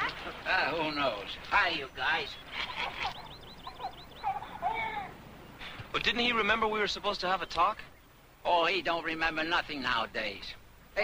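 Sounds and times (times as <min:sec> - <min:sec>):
infant babbling and cooing: 0:04.2 - 0:05.2.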